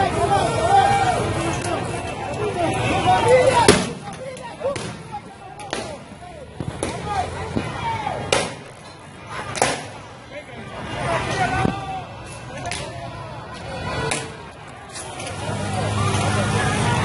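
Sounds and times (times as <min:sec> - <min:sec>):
protesters shouting: 0:00.0 - 0:17.0.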